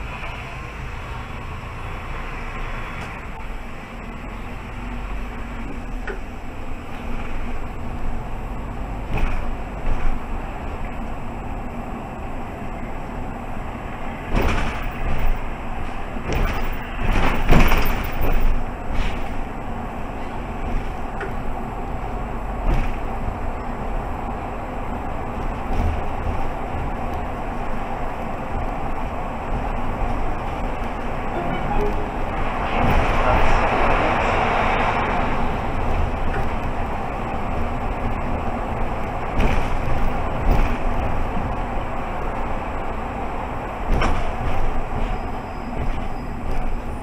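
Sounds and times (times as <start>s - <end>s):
bus engine and tyre noise: 0.0s - 47.0s
rush of road noise: 0.0s - 47.0s.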